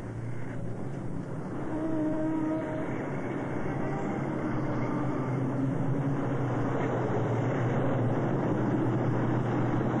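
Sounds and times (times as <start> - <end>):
steady humming drone: 0.0 - 10.0.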